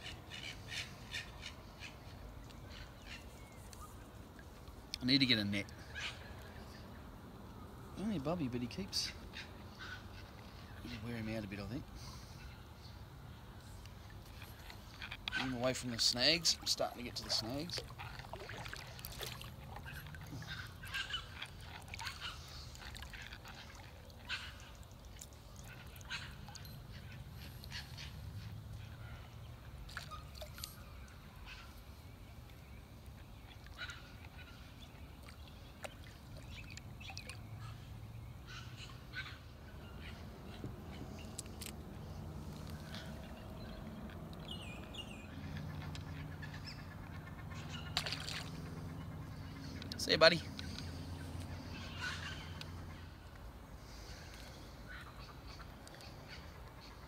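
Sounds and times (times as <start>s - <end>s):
bird calls: 0.0s - 57.0s
low steady river rumble: 0.0s - 57.0s.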